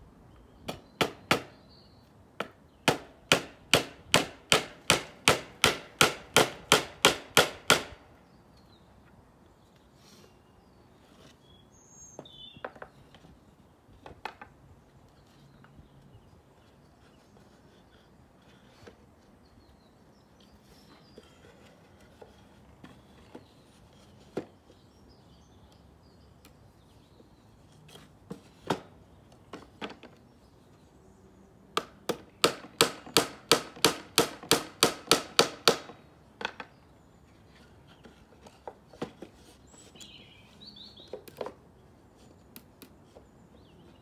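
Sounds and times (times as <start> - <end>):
hammer nailing wood: 0.7 - 1.6, 2.4 - 8.0, 31.8 - 36.0.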